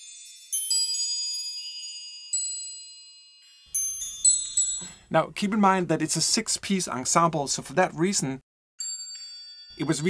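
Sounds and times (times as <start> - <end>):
wind chime ringing: 0.0 - 5.1, 8.8 - 10.0.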